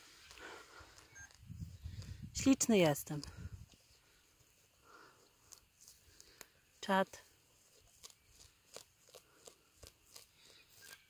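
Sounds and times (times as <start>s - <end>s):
animal chewing grass: 3.1s - 11.0s.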